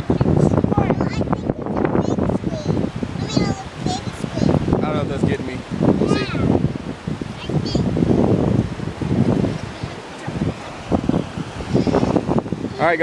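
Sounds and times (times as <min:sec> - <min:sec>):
surf washing in: 0:00.0 - 0:13.0
wind on microphone: 0:00.0 - 0:13.0.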